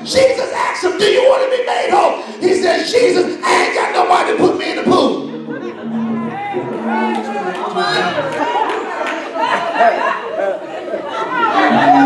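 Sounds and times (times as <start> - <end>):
voices talking over one another: 0.0 - 8.4.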